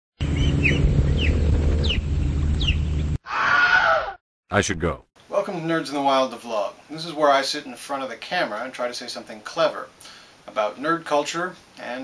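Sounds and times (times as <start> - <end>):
loud steady low hum: 0.2 - 3.0
falling bird-like chirps: 0.2 - 3.2
brief wavering cry: 3.3 - 4.2.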